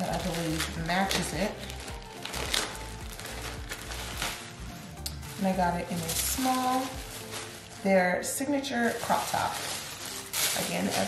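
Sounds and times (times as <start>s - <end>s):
background music: 0.0s - 11.0s
plastic bag crinkling: 0.0s - 11.0s.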